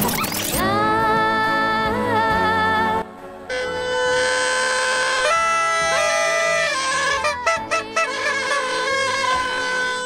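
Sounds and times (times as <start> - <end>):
party horn buzzing: 3.5 - 10.0.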